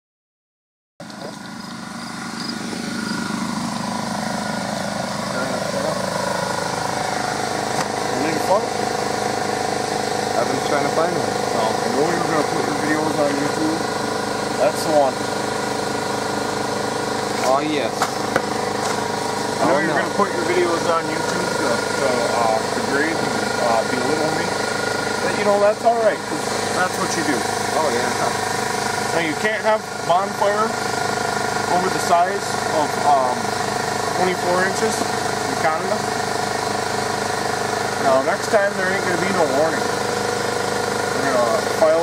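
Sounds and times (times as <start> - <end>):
steady machine hum: 1.0 - 42.0.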